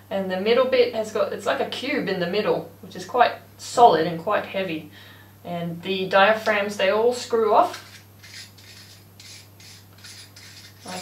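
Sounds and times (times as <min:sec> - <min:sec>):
faint threaded metal scraping: 0:07.6 - 0:11.0.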